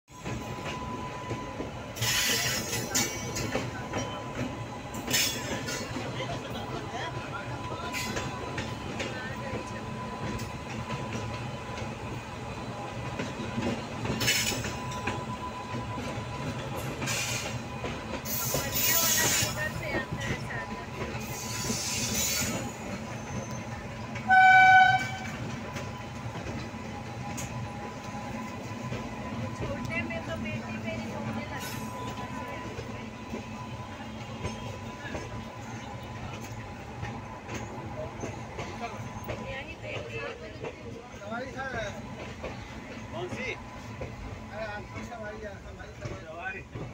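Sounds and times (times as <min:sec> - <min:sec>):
steel wheels rumbling on rail: 0:00.1 - 0:46.9
train clattering: 0:00.1 - 0:46.9
electric locomotive horn blast: 0:24.2 - 0:25.5.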